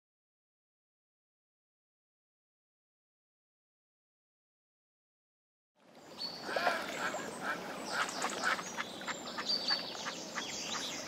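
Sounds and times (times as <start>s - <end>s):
waterfowl calling: 6.4s - 11.0s.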